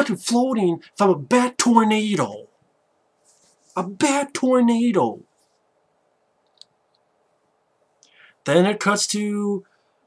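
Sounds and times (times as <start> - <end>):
man speaking: 0.0 - 2.6, 3.7 - 5.3, 8.4 - 9.7.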